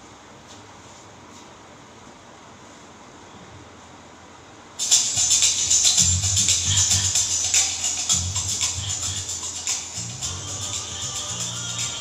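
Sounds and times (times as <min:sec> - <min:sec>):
room hiss: 0:00.0 - 0:12.0
high percussion pattern: 0:04.8 - 0:12.0
bass line: 0:05.1 - 0:12.0.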